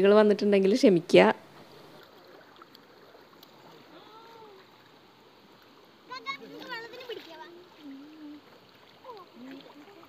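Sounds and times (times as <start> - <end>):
stony river running: 0.0 - 10.0.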